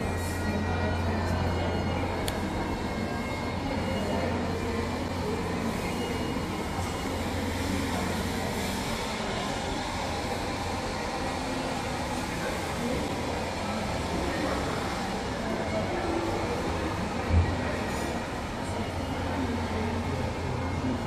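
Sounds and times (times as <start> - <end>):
people moving about: 0.0 - 21.0.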